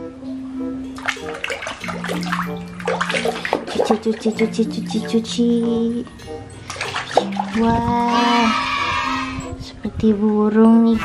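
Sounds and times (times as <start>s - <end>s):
background music: 0.0s - 11.0s
water sloshing in plastic basin: 1.0s - 5.3s, 6.6s - 8.5s.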